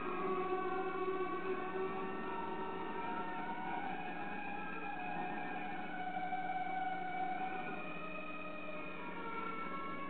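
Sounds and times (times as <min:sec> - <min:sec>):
howling audio feedback tones: 0:00.0 - 0:10.0.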